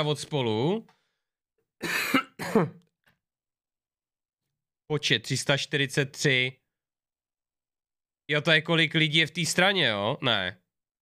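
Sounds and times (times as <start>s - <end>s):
man coughing: 1.8s - 2.8s.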